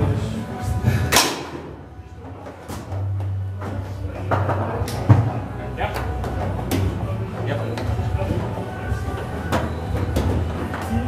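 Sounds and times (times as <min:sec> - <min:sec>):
foosball hitting plastic players: 0:01.1 - 0:07.0, 0:07.8 - 0:11.0.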